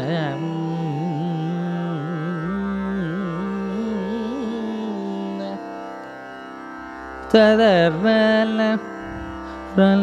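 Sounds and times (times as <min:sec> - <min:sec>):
tanpura drone: 0:00.0 - 0:10.0.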